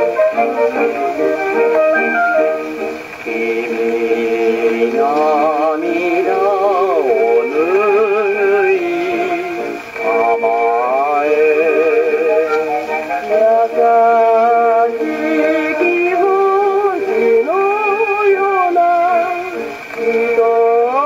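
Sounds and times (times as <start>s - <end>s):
gramophone playing a popular song: 0.0s - 21.0s
person singing with heavy vibrato: 0.0s - 21.0s.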